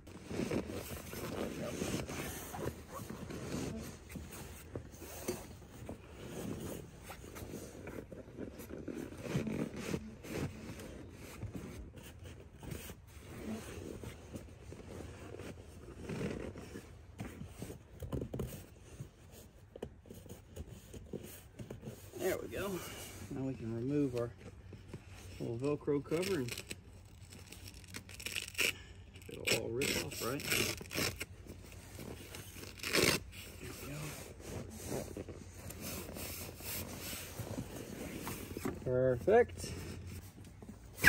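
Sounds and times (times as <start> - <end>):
fabric seat cover rustling: 0.0 - 26.2, 31.3 - 41.0.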